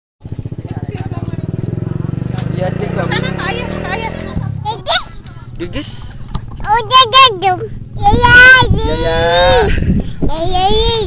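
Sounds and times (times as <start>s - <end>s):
motorcycle engine idling: 0.2s - 6.6s.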